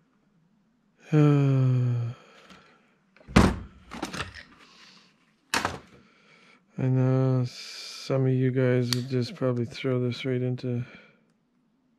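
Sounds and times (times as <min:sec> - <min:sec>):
objects thunking on workbench: 0:05.5 - 0:06.0.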